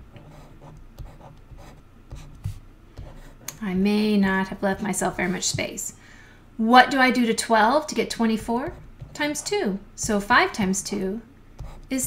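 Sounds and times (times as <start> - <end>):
stylus scratching on tablet screen: 0.1 - 3.5, 4.6 - 5.8, 8.0 - 11.0, 11.6 - 12.0.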